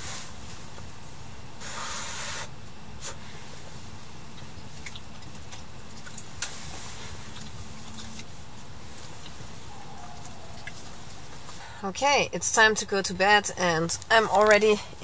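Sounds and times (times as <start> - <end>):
steady low rumble: 2.6 - 14.3.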